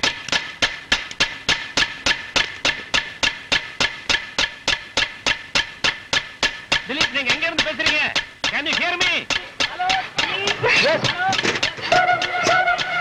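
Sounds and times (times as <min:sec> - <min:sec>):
clock-like percussive ticking: 0:00.0 - 0:13.0.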